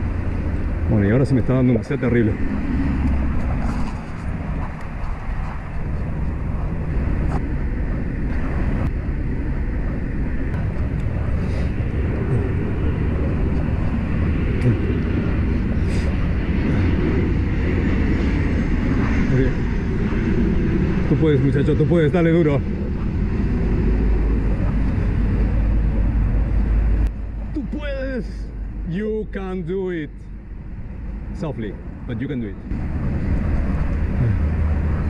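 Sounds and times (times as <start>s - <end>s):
highway traffic: 0.0s - 35.0s
wind rush on microphone: 0.0s - 35.0s.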